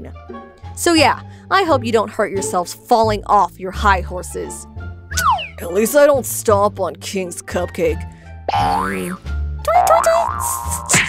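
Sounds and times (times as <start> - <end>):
background music with bass: 0.0 - 11.0
comic sliding pitch effect: 5.1 - 5.8.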